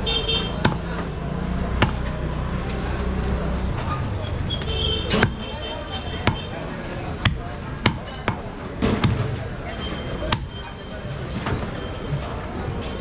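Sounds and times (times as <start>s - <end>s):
knife chopping meat on wood block: 0.6s - 0.9s, 1.7s - 2.1s, 5.2s - 5.5s.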